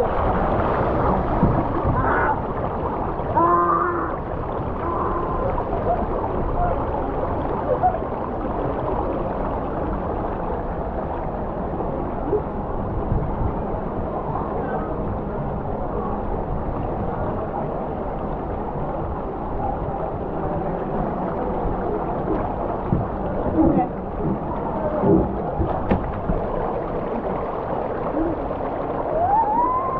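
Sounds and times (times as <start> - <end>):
water rushing down slide: 0.0 - 29.9.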